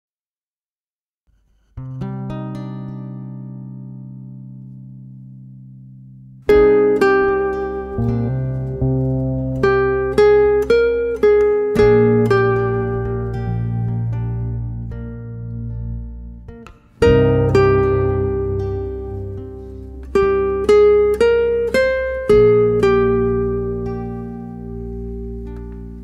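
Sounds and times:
bass: 1.7 - 26.0
plucked guitar melody: 1.8 - 26.0
low guitar chord ringing: 6.5 - 26.0.

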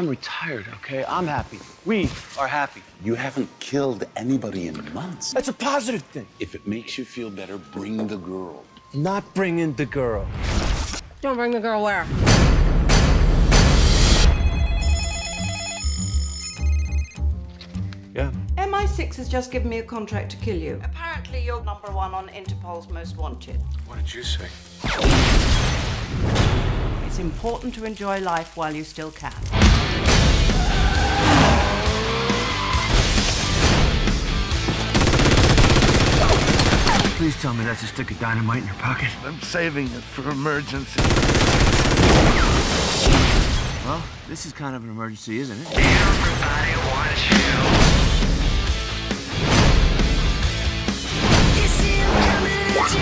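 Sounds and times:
phone ringing with electronic warble: 14.3 - 17.2
automatic gunfire: 34.9 - 37.2, 41.0 - 42.6.

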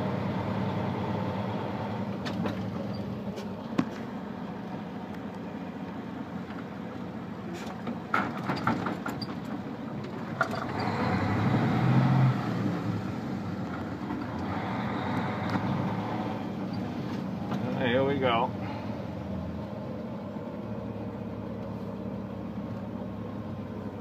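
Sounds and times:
vehicle engine and road noise: 0.0 - 24.0.

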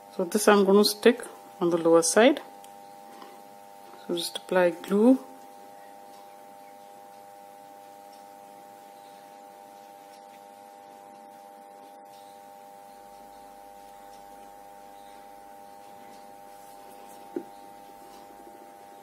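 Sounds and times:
faint high-pitched hum: 0.0 - 19.0.

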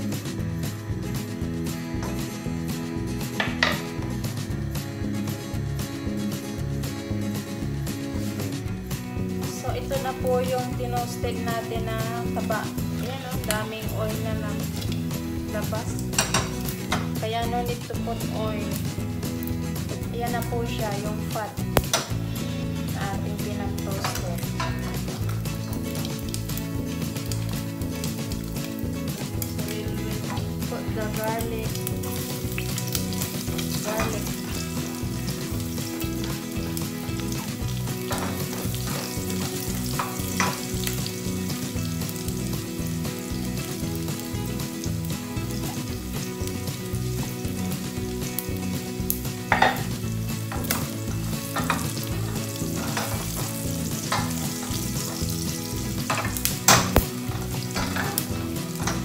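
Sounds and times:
fat sizzling in a pot: 0.0 - 59.0
wooden spoon knocking on pot: 2.0 - 2.3, 3.4 - 3.9, 16.2 - 17.2, 38.0 - 40.7, 49.5 - 49.9, 50.5 - 52.2.

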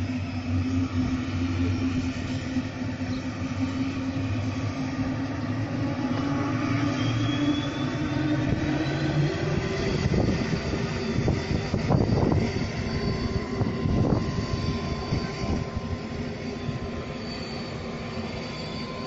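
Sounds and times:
aircraft engines running: 0.0 - 19.0
faint engine whine: 0.0 - 19.0.

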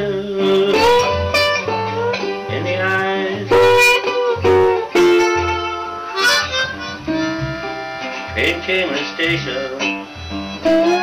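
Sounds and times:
blues harmonica: 0.0 - 11.0
slide guitar: 0.0 - 11.0
upright bass: 0.0 - 11.0.

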